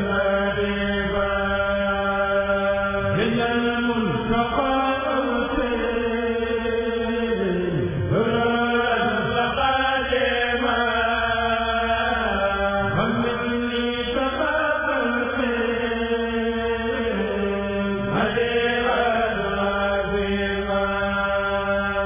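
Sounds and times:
men's choir chanting in unison: 0:00.0 - 0:22.0.

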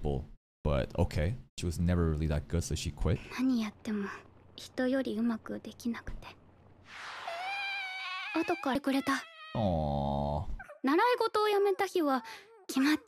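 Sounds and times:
high-pitched whining cry: 0:07.1 - 0:10.0.

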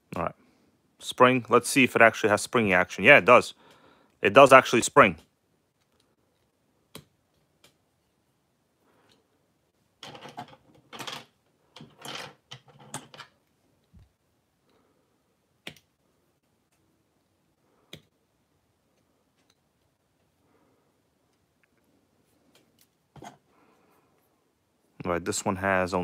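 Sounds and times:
plastic parts being handled: 0:10.0 - 0:14.2.

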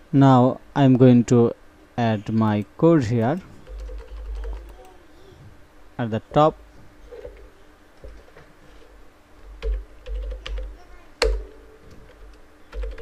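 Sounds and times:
typing on computer keyboard: 0:03.2 - 0:05.0, 0:09.6 - 0:13.0.

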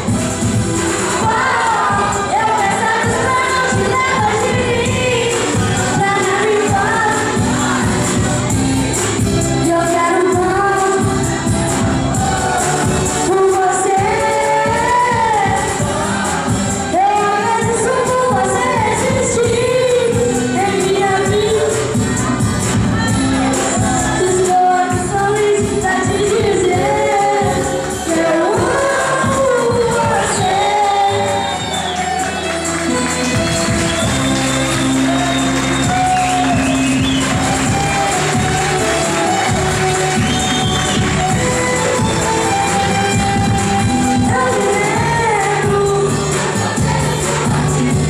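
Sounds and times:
backing track with bass notes: 0:00.0 - 0:48.0
person singing through a microphone: 0:01.1 - 0:32.0, 0:41.2 - 0:48.0.

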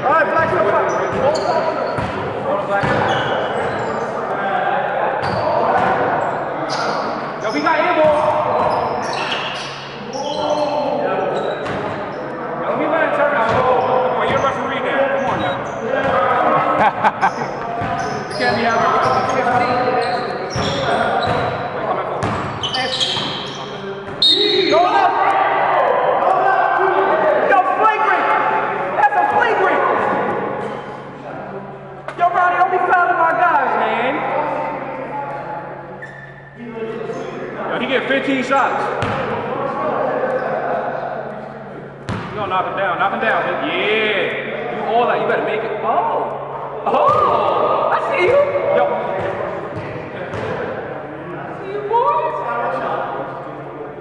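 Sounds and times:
players' voices echoing: 0:00.0 - 0:54.0
basketball bouncing on gym floor: 0:02.0 - 0:03.8, 0:20.5 - 0:21.6, 0:22.2 - 0:23.4, 0:39.0 - 0:39.3, 0:42.1 - 0:42.4, 0:49.2 - 0:50.6.

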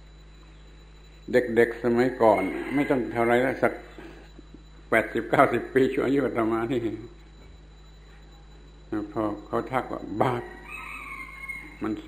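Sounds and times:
man talking: 0:01.3 - 0:03.9, 0:04.9 - 0:07.2, 0:08.9 - 0:10.6, 0:11.8 - 0:12.0
rooster crowing: 0:02.1 - 0:03.7, 0:10.2 - 0:12.0.

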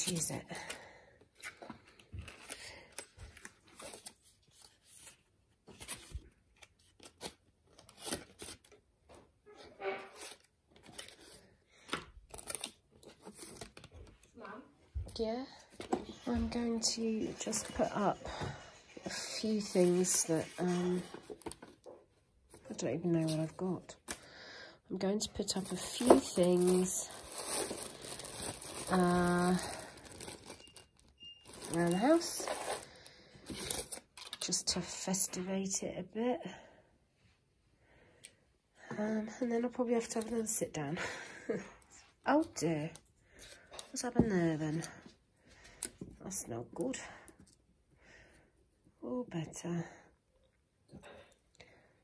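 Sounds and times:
plastic bag crinkling: 0:25.5 - 0:32.9.

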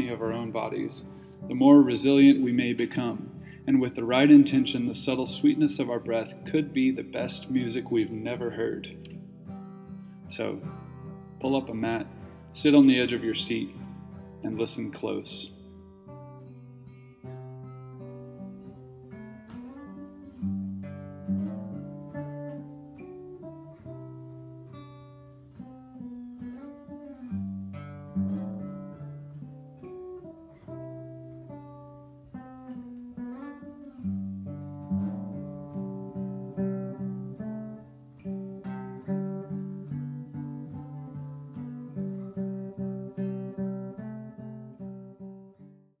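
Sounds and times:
acoustic guitar picking: 0:00.0 - 0:46.0.

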